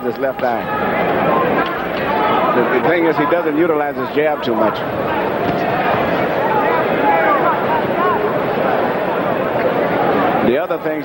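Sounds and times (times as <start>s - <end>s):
crowd murmur: 0.0s - 11.0s
spectators shouting: 0.4s - 10.6s.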